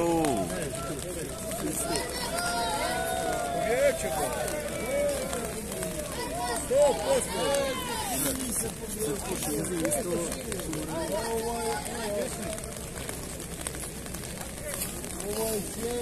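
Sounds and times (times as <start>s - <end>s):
spectators calling and shouting: 0.0s - 16.0s.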